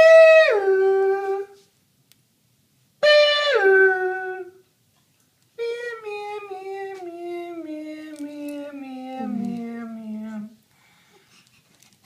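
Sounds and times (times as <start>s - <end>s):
high voice calling two notes: 9.1s - 9.7s.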